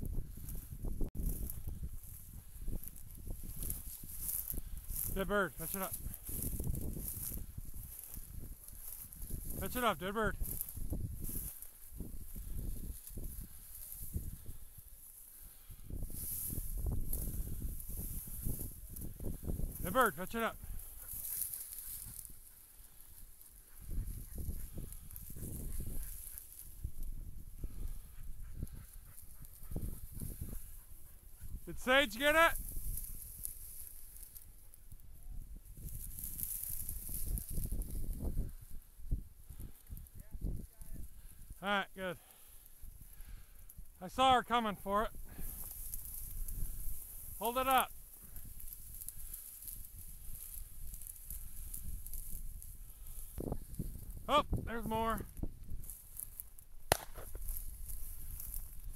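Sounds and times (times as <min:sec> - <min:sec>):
wind buffeting microphone: 0:00.0 - 0:05.2, 0:05.9 - 0:09.6, 0:10.3 - 0:19.8, 0:20.6 - 0:31.7, 0:35.0 - 0:41.5, 0:45.1 - 0:47.4, 0:48.0 - 0:55.9
dry grass brushing and scraping: 0:00.1 - 0:41.6, 0:45.1 - 0:58.9.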